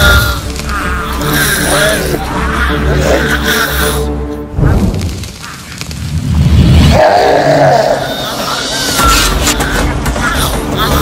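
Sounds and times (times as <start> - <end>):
whoosh of flames flaring: 4.6 - 7.1
creature groaning cry: 6.9 - 9.0.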